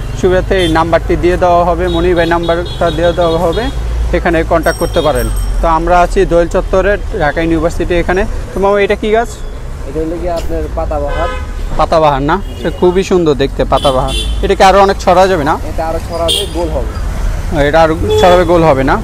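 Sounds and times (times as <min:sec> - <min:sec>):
low rumble of road traffic: 0:00.0 - 0:19.0
people talking: 0:00.2 - 0:17.0, 0:17.6 - 0:19.0
vehicle horn toots: 0:11.1 - 0:11.6, 0:18.0 - 0:18.6.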